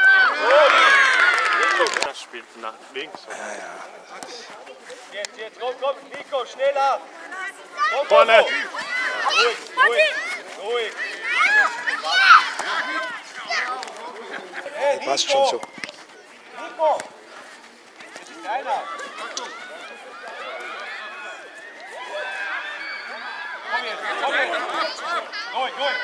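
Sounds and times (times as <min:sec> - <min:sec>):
players and spectators shouting: 0:00.0 - 0:02.0, 0:05.6 - 0:15.6, 0:18.0 - 0:26.0.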